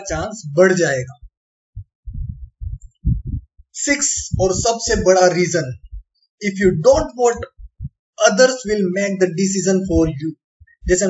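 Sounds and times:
low muffled thumps: 1.0s - 8.0s, 9.8s - 11.0s.

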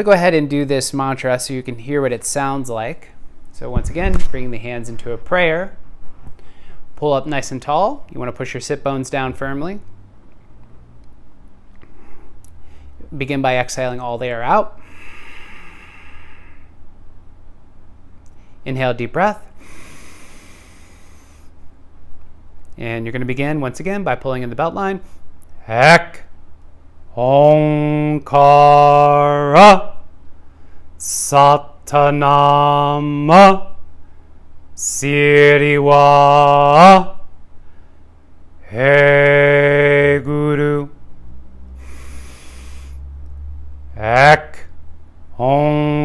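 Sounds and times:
low steady hum: 0.0s - 46.0s
deep breath in: 6.4s - 6.9s, 11.8s - 13.0s, 14.8s - 16.8s, 19.6s - 21.6s, 41.7s - 43.2s
man inhaling deeply: 6.4s - 6.9s, 11.8s - 13.0s, 14.8s - 16.8s, 19.5s - 21.6s, 30.4s - 31.0s, 37.6s - 38.2s, 41.7s - 43.2s.

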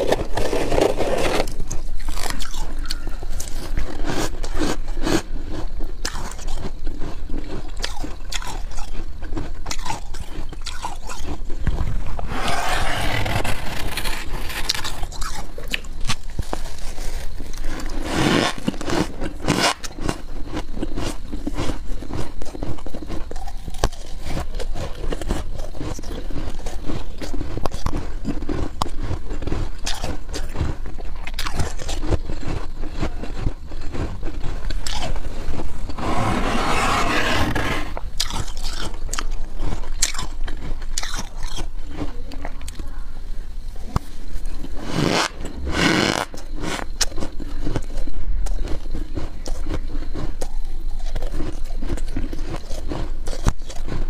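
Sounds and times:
frost scraping: 0.0s - 2.3s, 12.2s - 15.1s, 34.0s - 38.0s
frost crackling and crunching: 0.0s - 43.0s.

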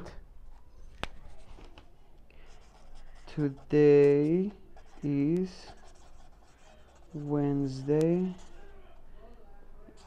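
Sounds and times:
pen scratching on paper: 2.5s - 8.7s.

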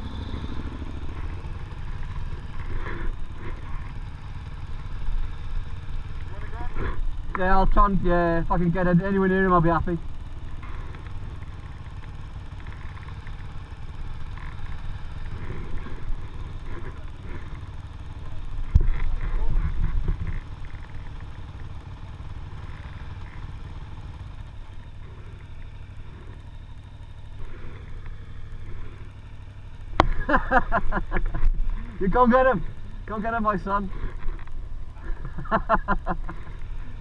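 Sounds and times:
motorcycle engine idling: 0.0s - 37.0s.

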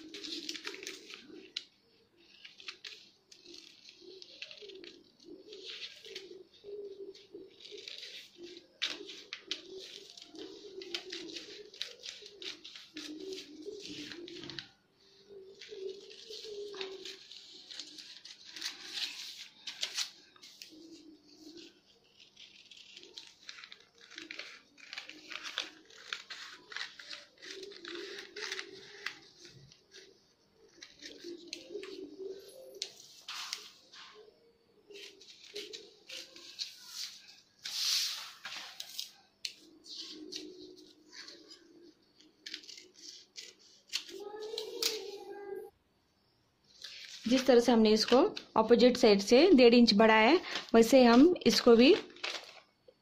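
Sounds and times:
scissors snipping paper: 0.0s - 33.8s, 34.8s - 45.4s
paper crunching: 0.0s - 45.2s, 51.5s - 53.0s
paper rustling: 0.0s - 45.7s, 46.6s - 49.0s, 50.4s - 53.0s
pigeon cooing: 0.0s - 47.5s.

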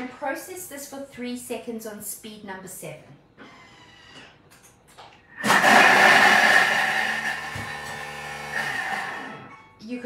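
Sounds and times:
food processor blade whirring: 5.4s - 9.5s.

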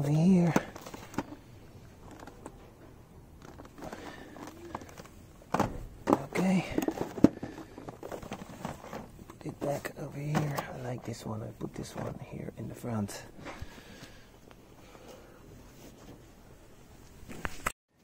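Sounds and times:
plastic packs clicking and knocking: 0.4s - 1.4s, 3.4s - 9.6s.

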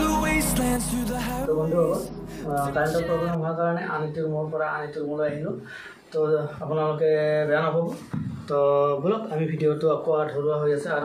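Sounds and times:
man chanting: 0.0s - 4.1s.

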